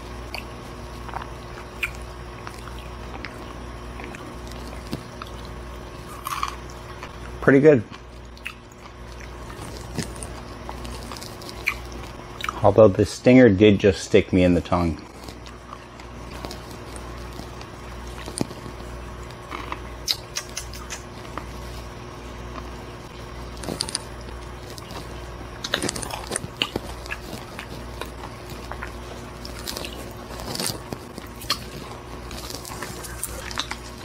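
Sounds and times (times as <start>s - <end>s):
crunchy chewing: 0.0s - 12.8s, 14.6s - 34.0s
steady low hum: 0.0s - 34.0s.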